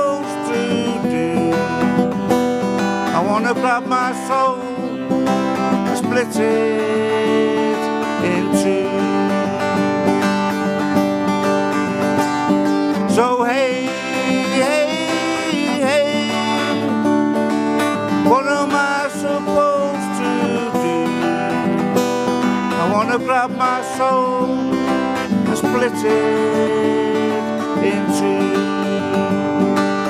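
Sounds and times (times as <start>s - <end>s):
acoustic guitar strumming: 0.0s - 30.0s
man singing: 0.0s - 30.0s.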